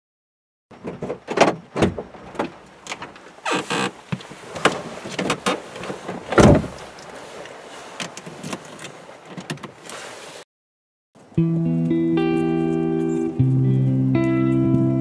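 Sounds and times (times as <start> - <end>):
heavy thump: 6.0 - 6.8.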